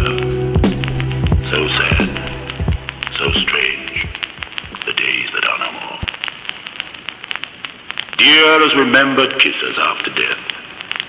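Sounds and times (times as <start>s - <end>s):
record crackles and pops: 0.0s - 11.0s
steady record hiss: 0.0s - 11.0s.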